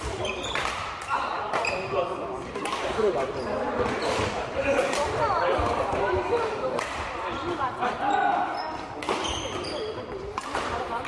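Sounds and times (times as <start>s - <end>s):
rackets hitting shuttlecock: 0.0s - 1.8s, 2.5s - 7.6s, 8.9s - 11.0s.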